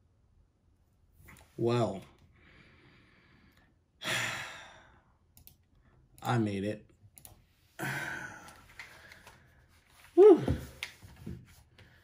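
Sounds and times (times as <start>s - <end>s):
man sighing: 4.0s - 5.0s, 7.8s - 8.7s, 10.2s - 10.8s.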